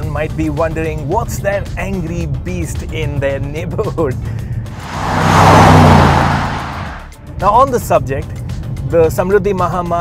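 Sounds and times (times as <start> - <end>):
car driving past at speed: 4.7 - 7.1.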